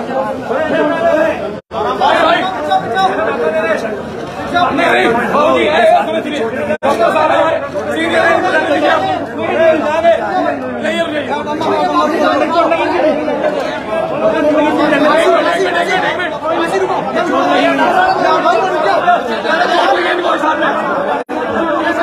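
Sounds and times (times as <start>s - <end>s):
crowd of men talking: 0.0s - 22.0s.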